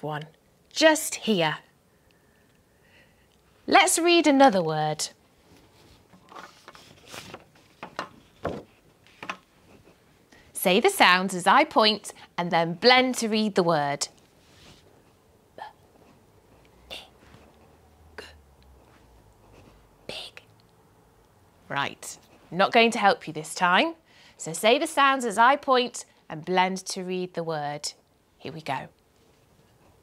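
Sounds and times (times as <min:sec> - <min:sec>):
paper cards rustling: 0:06.0 - 0:09.5
woman whispering: 0:15.5 - 0:15.8, 0:16.8 - 0:17.4, 0:18.1 - 0:18.5, 0:20.0 - 0:20.6.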